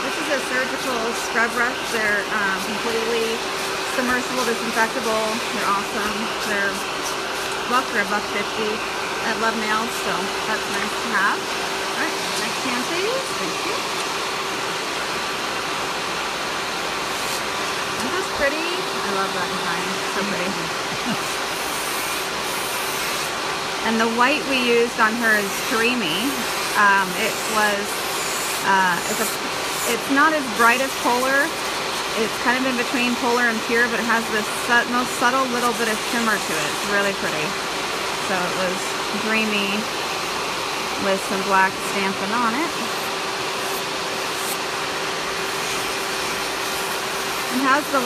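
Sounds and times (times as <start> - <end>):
electric nail file whirring: 0.0 - 48.0
sanding hiss: 25.0 - 32.9, 42.8 - 44.6, 45.4 - 48.0.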